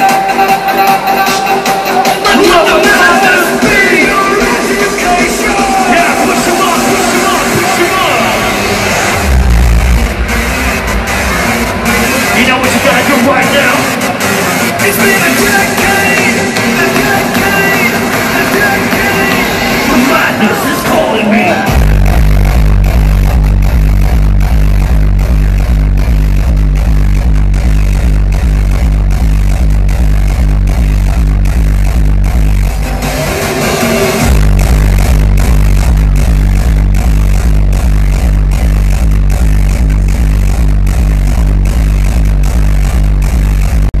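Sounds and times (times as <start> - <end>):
hardstyle dance music: 0.0 - 44.0
hard kick drum: 21.7 - 33.0, 34.2 - 44.0.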